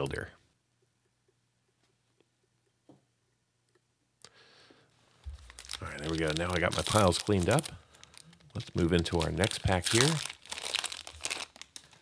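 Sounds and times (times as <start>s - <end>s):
foil wrapper crinkling and tearing: 5.3s - 12.0s.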